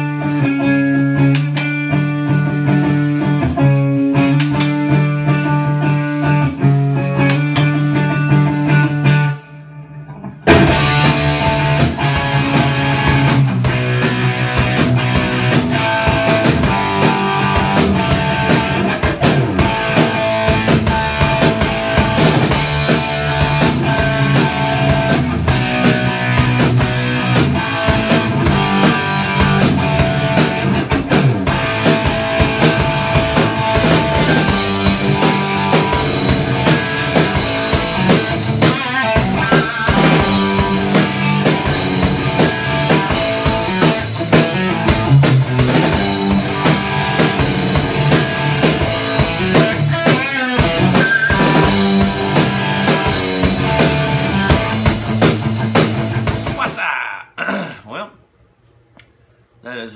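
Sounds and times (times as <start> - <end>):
rock band playing instrumental: 0.0 - 56.7.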